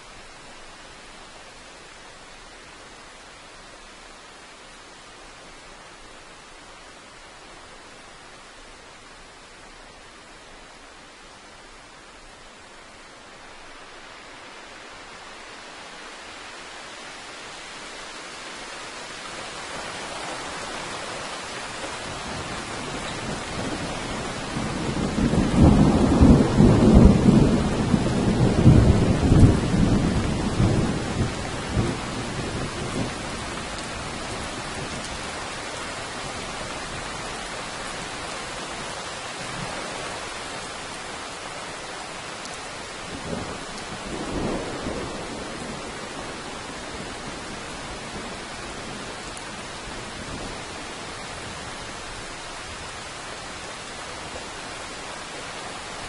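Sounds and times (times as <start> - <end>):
steady rain: 0.0 - 56.0
thunder rumbling: 22.2 - 35.1, 43.2 - 48.4.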